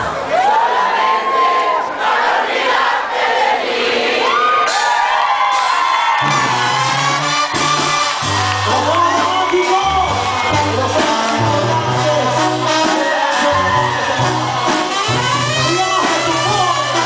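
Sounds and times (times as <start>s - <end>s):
crowd cheering and shouting: 0.0s - 17.0s
low bass line: 6.2s - 12.9s, 13.5s - 17.0s
band with clarinets playing: 6.2s - 17.0s.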